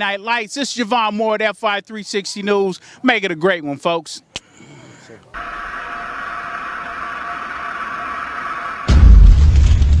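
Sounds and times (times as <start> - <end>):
hissing synthesized tone: 5.4 - 9.6
low explosion boom: 8.9 - 10.0.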